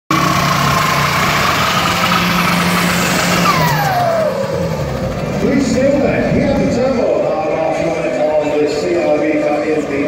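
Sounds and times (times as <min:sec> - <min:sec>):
car engine at high revs: 0:00.1 - 0:07.0.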